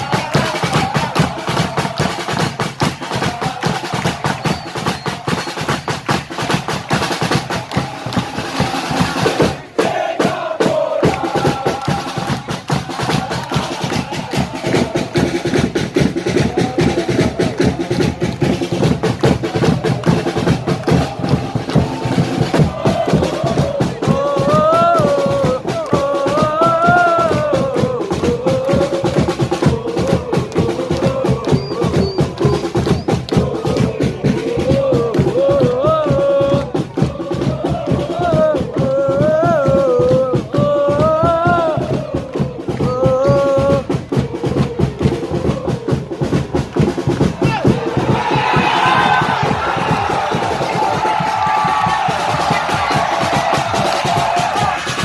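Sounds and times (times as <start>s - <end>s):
fast steady drumming: 0.0s - 55.0s
football supporters chanting: 0.0s - 55.0s.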